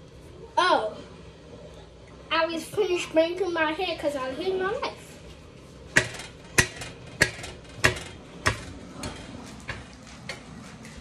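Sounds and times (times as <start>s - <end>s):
sharp knocks: 5.9s - 9.9s.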